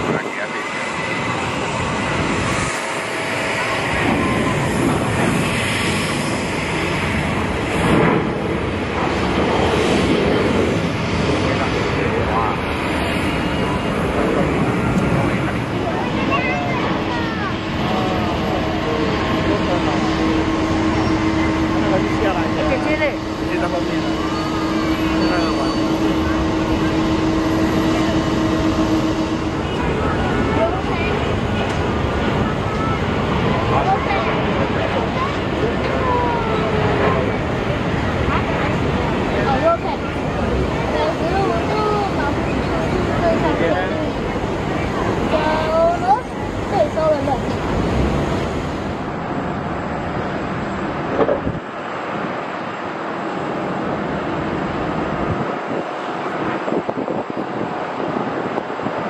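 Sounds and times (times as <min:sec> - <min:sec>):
people talking: 0:00.0 - 0:06.0, 0:11.2 - 0:48.0
steady hum: 0:00.0 - 0:55.5
jet engines roaring: 0:00.0 - 0:59.0.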